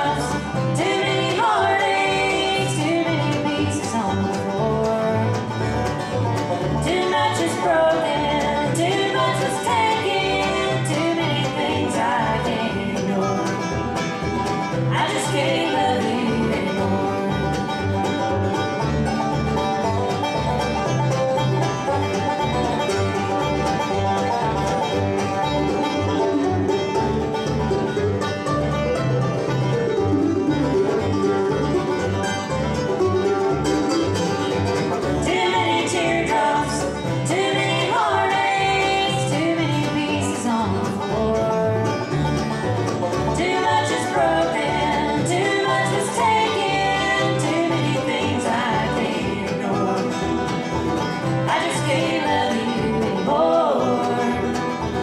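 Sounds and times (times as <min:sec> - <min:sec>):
bluegrass band playing: 0:00.0 - 0:55.0
upright bass plucking: 0:00.0 - 0:55.0.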